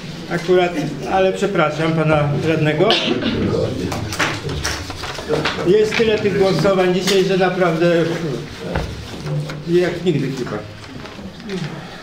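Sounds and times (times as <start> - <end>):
murmured voices: 0.0 - 12.0.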